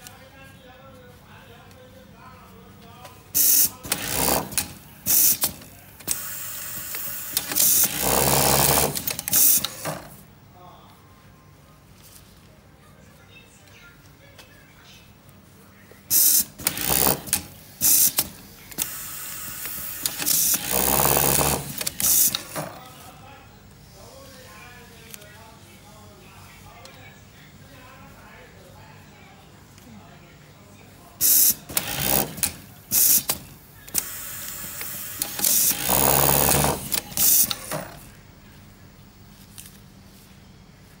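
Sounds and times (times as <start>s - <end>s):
pneumatic air hiss bursts: 3.4s - 3.7s, 5.1s - 5.5s, 16.1s - 16.8s, 17.7s - 20.7s, 21.6s - 22.5s, 31.2s - 31.9s, 32.9s - 37.7s
sewing machine stitching: 3.4s - 10.1s, 16.1s - 22.7s, 31.2s - 38.0s.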